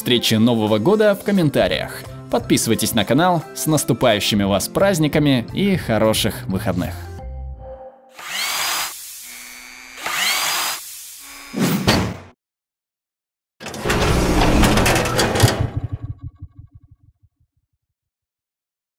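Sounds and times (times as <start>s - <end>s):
whirring drill-like mechanical burst: 8.2s - 11.6s.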